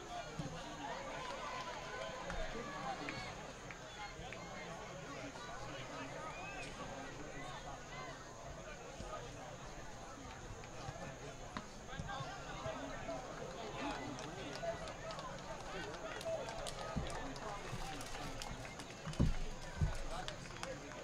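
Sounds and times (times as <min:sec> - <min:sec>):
distant players and spectators shouting: 0:00.0 - 0:21.0.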